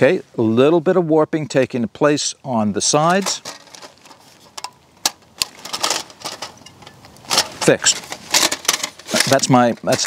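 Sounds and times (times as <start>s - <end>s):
metal panels clicking and rattling: 3.0s - 10.0s.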